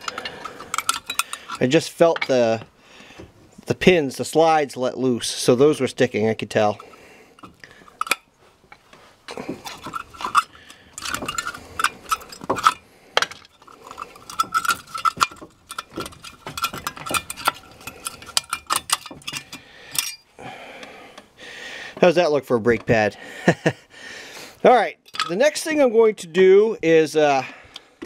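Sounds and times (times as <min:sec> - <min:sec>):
metal clicks and scrapes: 0:00.0 - 0:02.7, 0:06.5 - 0:20.3, 0:25.0 - 0:25.7.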